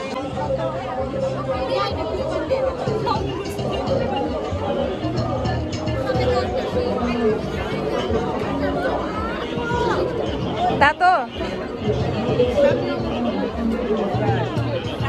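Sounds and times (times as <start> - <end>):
crowd chatter: 0.0 - 15.0
music with low bass line: 0.0 - 15.0.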